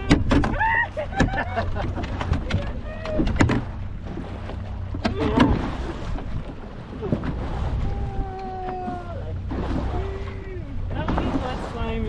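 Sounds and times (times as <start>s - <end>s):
boat motor rumbling: 0.0s - 12.0s
waves: 0.0s - 12.0s.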